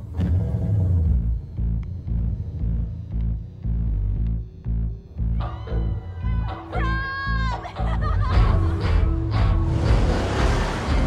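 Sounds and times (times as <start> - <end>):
rock music with bass guitar: 1.1 - 11.0
car engine starting: 8.4 - 11.0.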